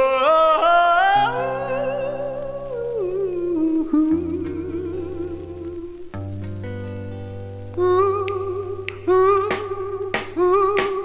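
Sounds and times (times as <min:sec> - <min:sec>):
held vocal note with vibrato: 0:00.0 - 0:06.0.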